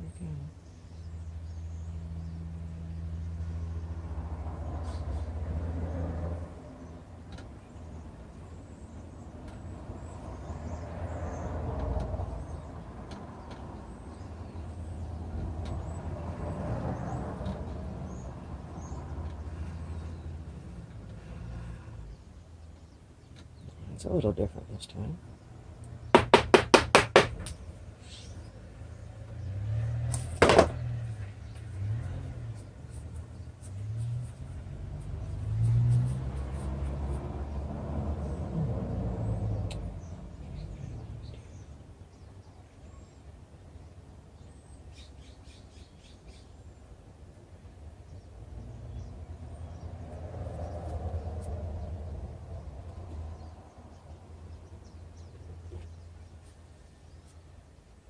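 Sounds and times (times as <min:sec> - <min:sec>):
loud knock: 0:26.2 - 0:27.6, 0:30.4 - 0:30.8
low rumbling handling noise: 0:29.3 - 0:37.2.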